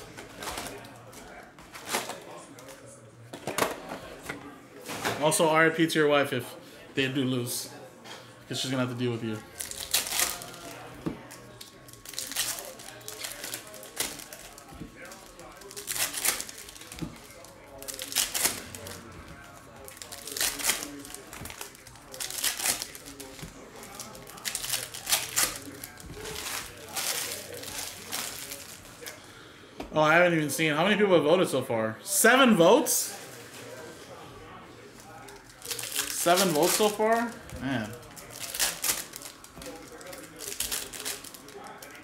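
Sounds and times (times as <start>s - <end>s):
foil wrappers crinkling and tearing: 9.5s - 29.2s, 35.0s - 42.0s.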